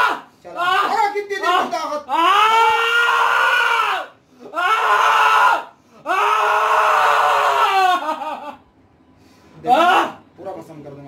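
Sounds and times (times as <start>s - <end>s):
young man screaming: 0.0s - 8.6s, 9.7s - 10.2s.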